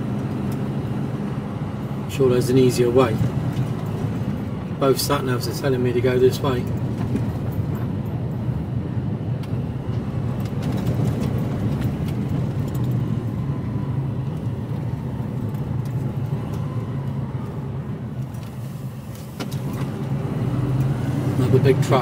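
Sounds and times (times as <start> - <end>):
diesel lorry engine droning: 0.0 - 22.0.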